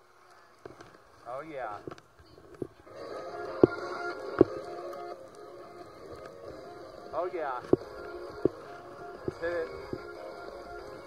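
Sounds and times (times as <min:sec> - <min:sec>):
hum of held tones: 0:02.9 - 0:11.0.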